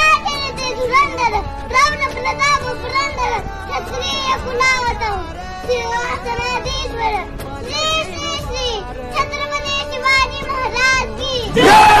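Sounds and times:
girl shouting a chanted recitation: 0.0s - 12.0s
crowd shouting: 11.5s - 12.0s.

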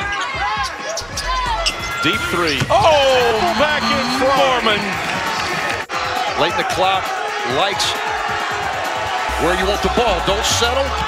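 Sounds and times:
crowd noise: 0.0s - 11.0s
shoe squeaks: 0.4s - 2.8s.

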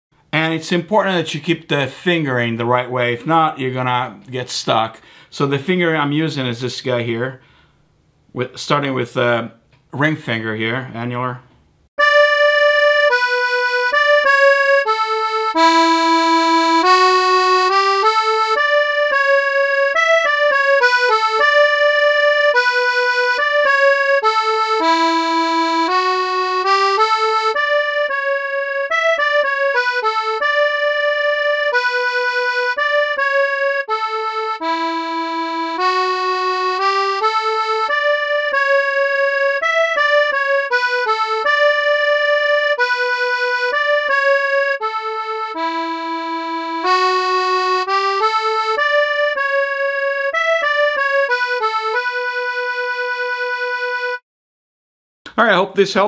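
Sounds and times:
synthesizer accordion riff: 12.0s - 54.2s.

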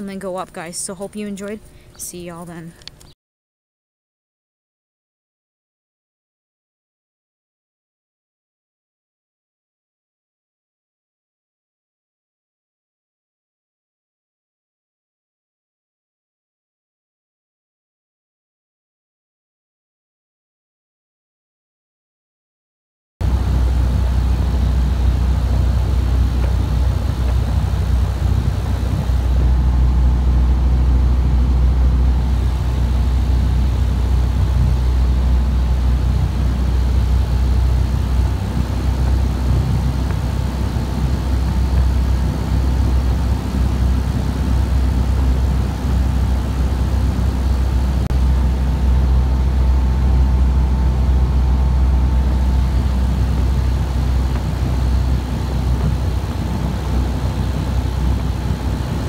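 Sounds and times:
aircraft engine drone: 23.2s - 59.0s.

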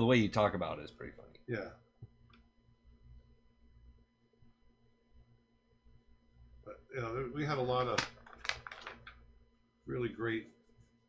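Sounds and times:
paper sheets flipping: 7.9s - 9.2s.

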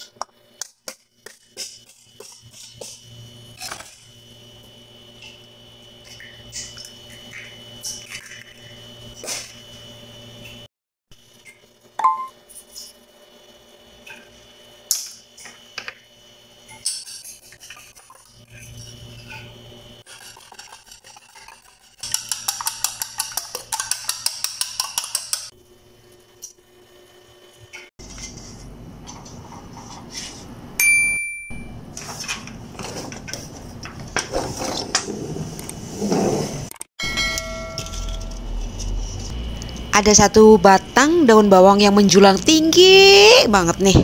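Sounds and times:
utensil beating egg in metal bowl: 0.6s - 4.0s, 16.8s - 25.6s
utensil scraping bowl: 16.9s - 25.5s.

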